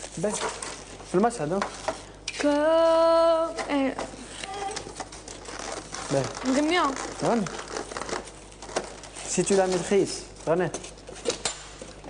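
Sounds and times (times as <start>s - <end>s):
food packaging crinkling: 4.7s - 11.2s.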